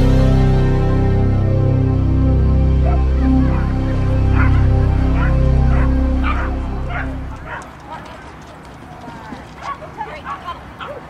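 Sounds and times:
music: 0.0 - 7.6
dog barking: 4.3 - 4.6, 5.2 - 8.0, 9.6 - 11.0.

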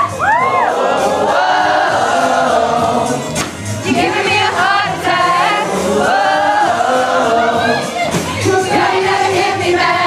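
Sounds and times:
backing music: 0.0 - 10.0
men singing into microphones: 0.6 - 10.0.

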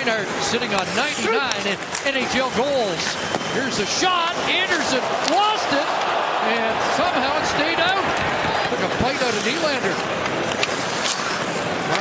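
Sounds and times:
arena crowd hum: 0.0 - 12.0
skates scraping ice: 0.0 - 12.0.

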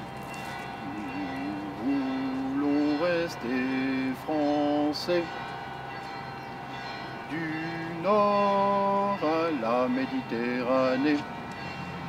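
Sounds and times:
steady sustained tones: 0.0 - 12.0
person singing slow song: 0.7 - 5.6, 7.2 - 11.3.

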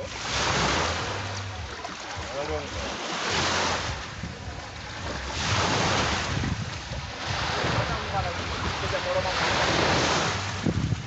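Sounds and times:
waves washing onto shore: 0.0 - 11.0
wind rumbling on microphone: 0.0 - 11.0.

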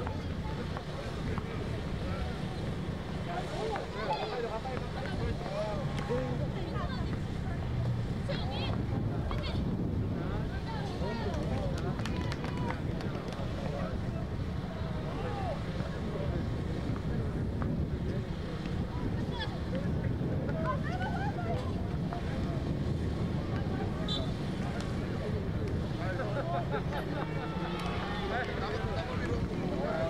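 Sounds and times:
murmur of onlookers: 0.0 - 30.0
wind on microphone: 0.0 - 30.0
players shouting: 26.6 - 30.0.

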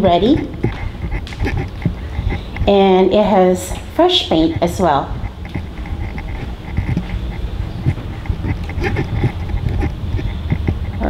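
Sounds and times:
handheld camera rumble: 0.0 - 11.0
footsteps on carpeted stairs: 3.7 - 11.0.

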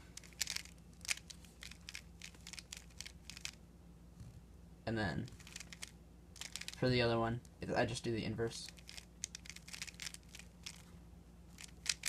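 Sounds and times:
puzzle cube layers clicking: 0.2 - 3.6, 5.3 - 6.8, 8.7 - 10.8, 11.6 - 12.0.

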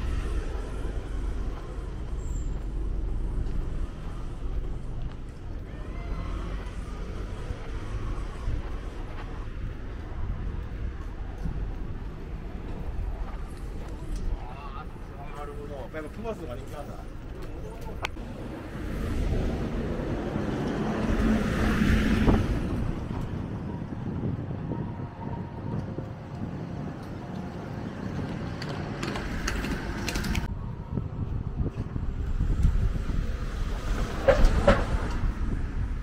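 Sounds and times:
vehicles passing close by: 0.0 - 36.0.

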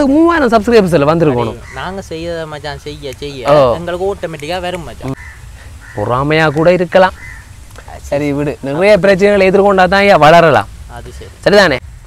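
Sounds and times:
man talking: 0.0 - 5.2, 6.0 - 11.8
short bird calls: 1.4 - 2.1, 5.0 - 7.9.

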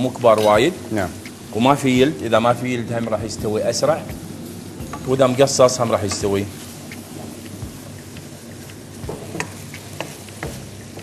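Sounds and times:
chicken and onion sizzling in pan: 0.0 - 11.0.

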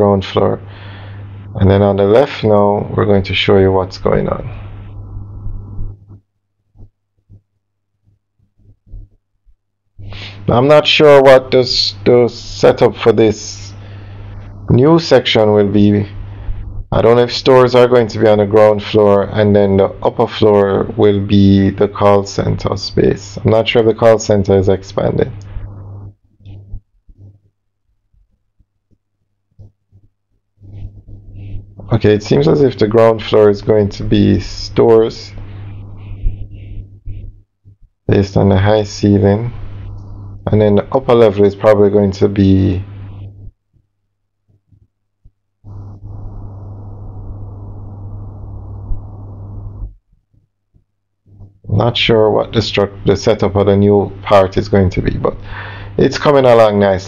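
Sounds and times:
steady low hum: 0.0 - 57.0
voice-over speaking: 14.4 - 16.2, 31.8 - 36.5, 38.1 - 43.2.

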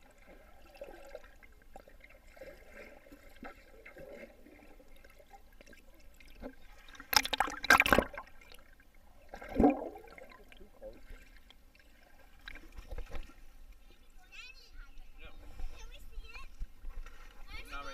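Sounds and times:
bubbling and splashing: 0.0 - 13.4
muffled underwater water churning: 0.0 - 13.8.

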